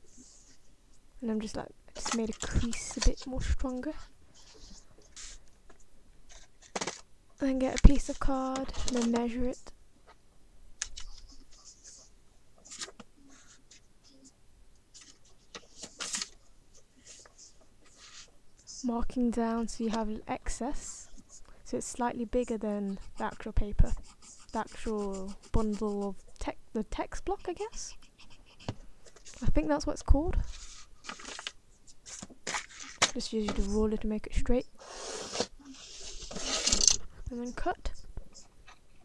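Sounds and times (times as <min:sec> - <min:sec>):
paper rustling against card: 0:04.4 - 0:05.4, 0:06.3 - 0:07.0, 0:07.7 - 0:09.4, 0:10.8 - 0:14.3, 0:14.9 - 0:18.3, 0:30.4 - 0:33.9, 0:35.7 - 0:37.7
pencil scratching on card: 0:22.4 - 0:26.4, 0:27.2 - 0:29.4, 0:33.5 - 0:33.9, 0:34.9 - 0:37.7.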